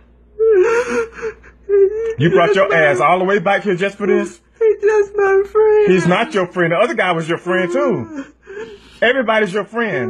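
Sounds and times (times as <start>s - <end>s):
woman crying: 0.4s - 3.3s, 4.1s - 6.6s, 7.2s - 8.9s.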